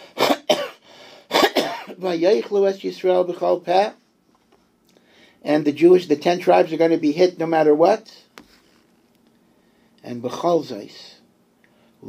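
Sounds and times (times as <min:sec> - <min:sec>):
man coughing: 0:00.1 - 0:02.0.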